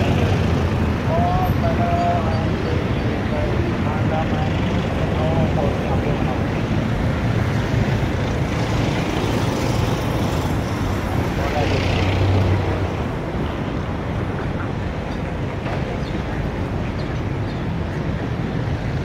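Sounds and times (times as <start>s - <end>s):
vehicles passing: 0.0s - 19.0s.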